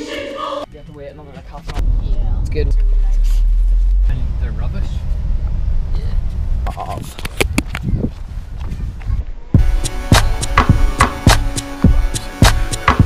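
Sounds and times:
indistinct voices: 0.0s - 5.1s
music with a steady beat: 9.6s - 13.0s.

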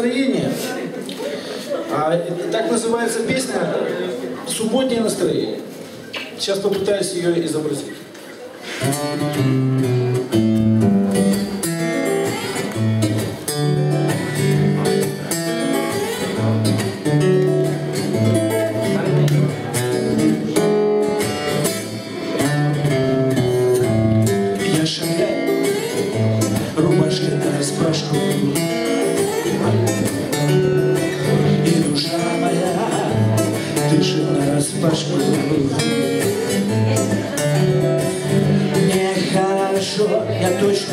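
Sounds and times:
acoustic guitar strumming: 8.8s - 40.9s.

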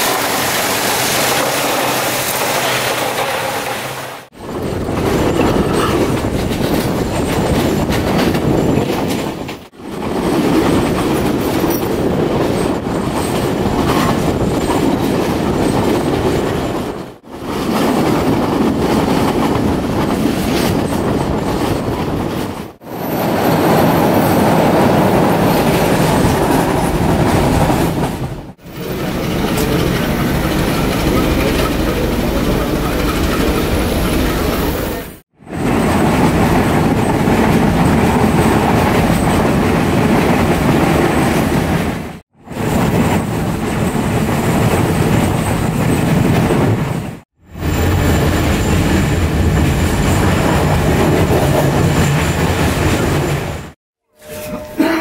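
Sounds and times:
clickety-clack over rail joints: 0.0s - 53.8s
train wheels rumbling: 0.0s - 55.0s.

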